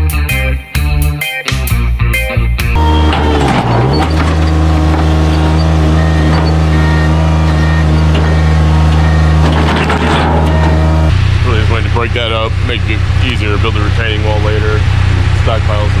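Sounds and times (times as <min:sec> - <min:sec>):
loader engine running: 0:02.8 - 0:16.0.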